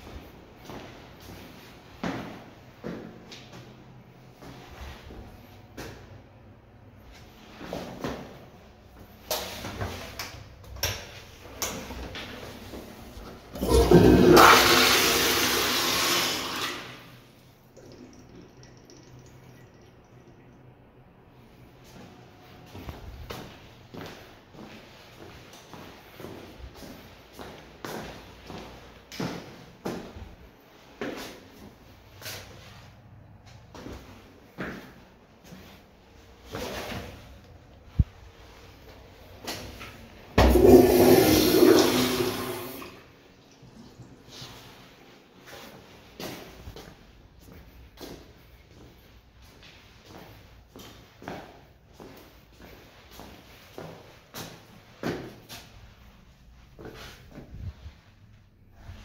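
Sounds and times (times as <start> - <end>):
toilet flushing: 12.6 - 20.2, 39.4 - 44.8.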